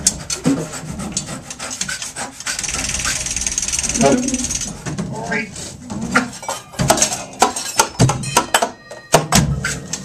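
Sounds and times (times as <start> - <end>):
drums and percussion: 0.0 - 10.0.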